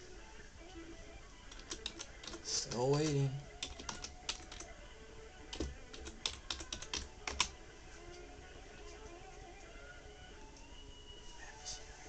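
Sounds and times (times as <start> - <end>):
keyboard clicks: 1.5 - 4.7, 5.5 - 7.6.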